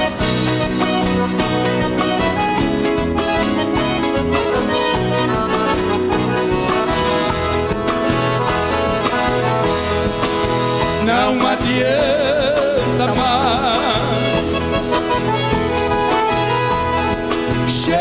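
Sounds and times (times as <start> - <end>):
accordion melody: 0.0 - 18.0
band with guitar bass and drums: 0.0 - 18.0
man singing with vibrato: 10.8 - 15.2, 17.6 - 18.0.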